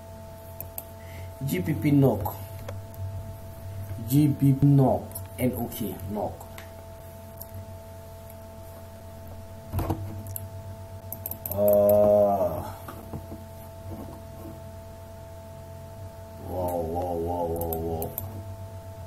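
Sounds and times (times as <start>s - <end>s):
steady background hum: 0.0s - 19.0s
click: 11.1s - 11.9s, 16.6s - 18.3s
man humming: 11.4s - 13.1s, 16.4s - 18.4s.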